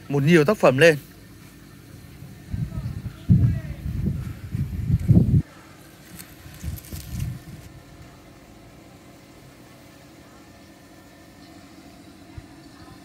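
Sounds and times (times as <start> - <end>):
engine hum: 0.0 - 13.0
low rumble: 2.2 - 5.4.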